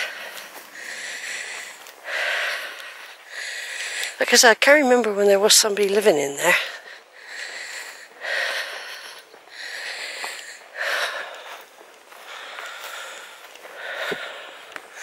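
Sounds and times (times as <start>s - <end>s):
person breathing close to microphone: 0.0s - 4.2s, 6.5s - 15.0s.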